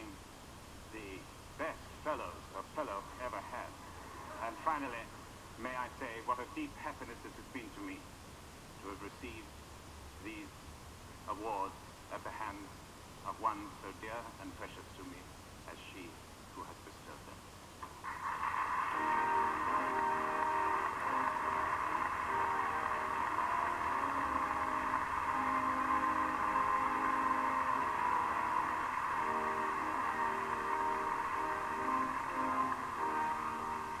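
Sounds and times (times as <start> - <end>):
orchestra playing sustained chords: 19.0 - 34.0.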